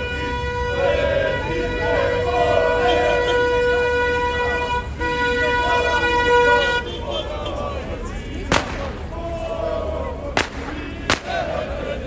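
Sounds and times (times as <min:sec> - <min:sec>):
horn on one steady note: 0:00.0 - 0:07.6
crowd voices: 0:00.0 - 0:12.0.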